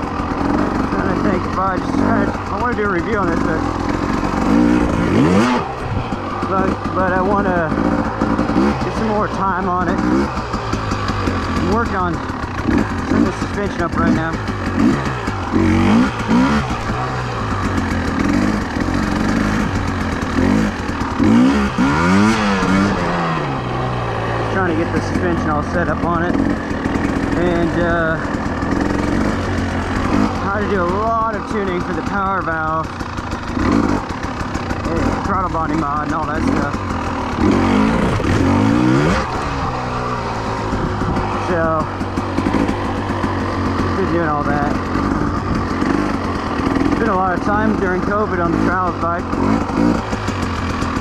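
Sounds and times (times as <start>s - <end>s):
two-stroke motorcycle engine revving: 0.0s - 51.0s.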